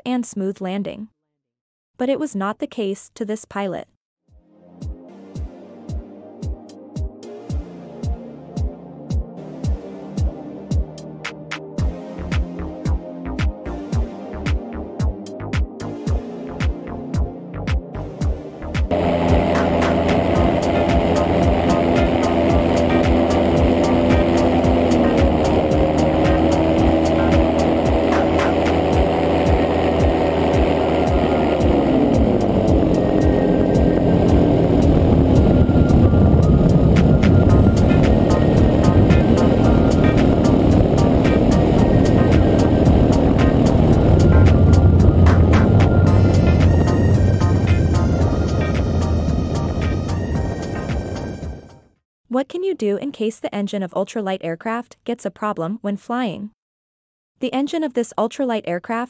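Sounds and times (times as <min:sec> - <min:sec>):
music with throbbing beat: 0:04.8 - 0:51.8
ultralight engine and propeller: 0:18.9 - 0:51.7
wind noise: 0:18.9 - 0:51.7.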